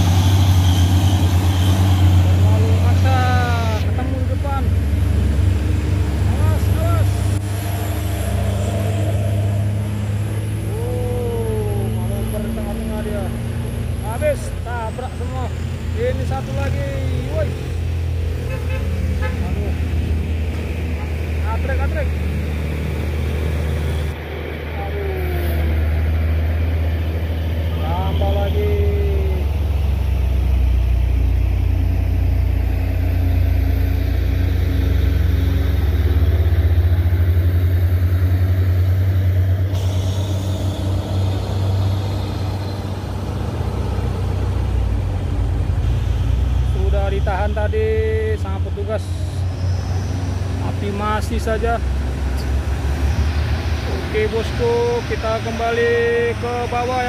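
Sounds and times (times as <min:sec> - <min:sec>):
diesel truck engines rumbling: 0:00.0 - 0:57.0.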